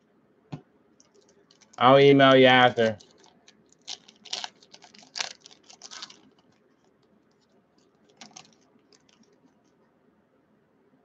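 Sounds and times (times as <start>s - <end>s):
foil wrapper crinkling and tearing: 1.1s - 9.5s.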